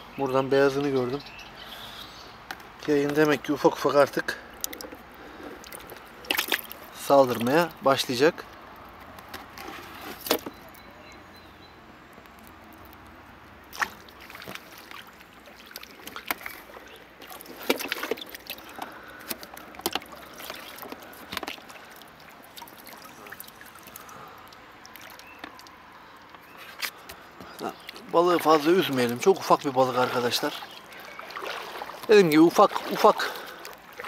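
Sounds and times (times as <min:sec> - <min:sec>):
water lapping around boat: 0:03.1 - 0:07.9, 0:13.6 - 0:34.0
clicks and knocks in boat: 0:15.7 - 0:21.8.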